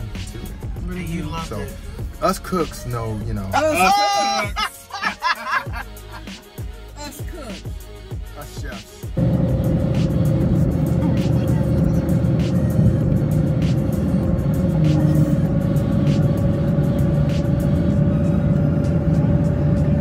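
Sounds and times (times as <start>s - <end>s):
engine and tyres hum: 0.0s - 3.8s, 9.2s - 20.0s
music playing: 0.0s - 20.0s.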